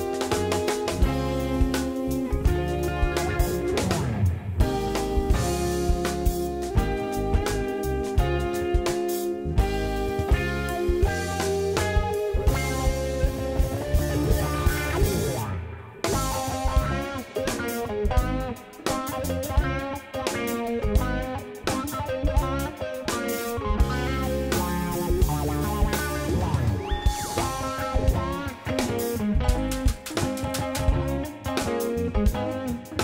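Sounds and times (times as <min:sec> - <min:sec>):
jazz band playing: 0:00.0 - 0:33.0.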